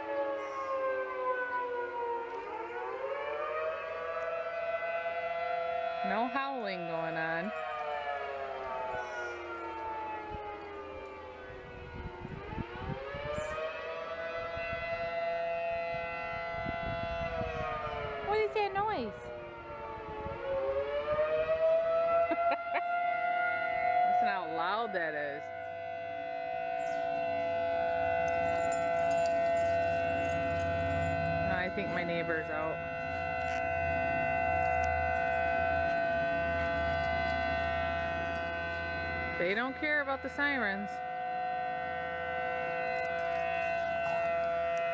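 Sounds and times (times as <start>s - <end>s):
warning siren wailing: 0.0s - 44.9s.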